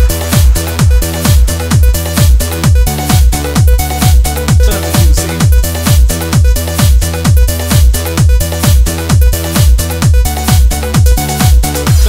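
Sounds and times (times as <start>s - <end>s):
held synth chords: 0.0s - 12.0s
kick drum: 0.0s - 12.0s
steady bass: 0.0s - 12.0s.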